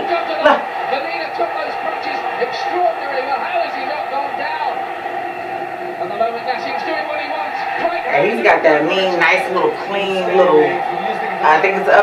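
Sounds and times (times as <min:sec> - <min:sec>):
man commentating: 0:00.0 - 0:04.8, 0:06.0 - 0:12.0
arena crowd noise: 0:00.0 - 0:12.0.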